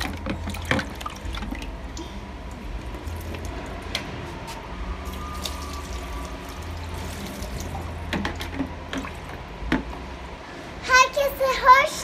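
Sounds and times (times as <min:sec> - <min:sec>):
water sloshing in bucket: 0:00.0 - 0:02.1, 0:05.1 - 0:09.4.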